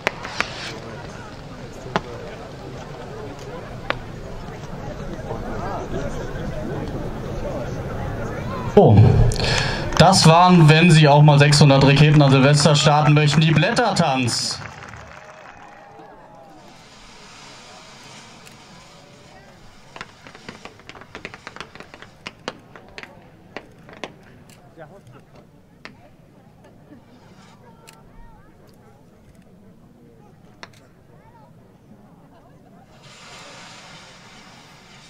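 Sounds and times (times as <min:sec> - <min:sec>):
fireworks crackling and popping: 0:00.0 - 0:06.0, 0:09.0 - 0:26.1, 0:26.7 - 0:27.8, 0:32.9 - 0:35.0
murmur of distant voices: 0:00.0 - 0:35.0.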